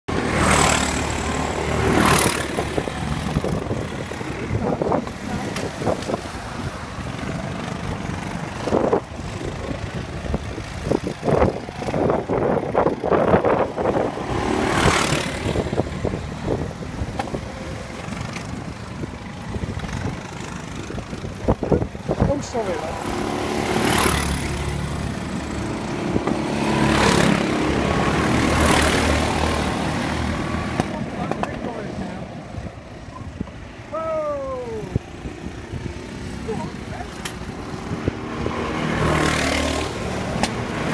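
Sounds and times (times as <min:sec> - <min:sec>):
go-kart engines running: 0:00.1 - 0:40.9.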